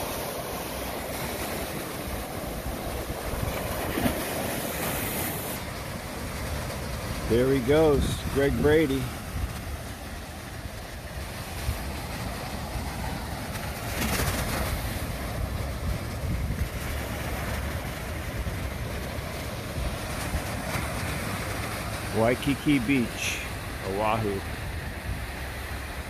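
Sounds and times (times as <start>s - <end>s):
waves washing on sandy beach: 0.0s - 26.0s.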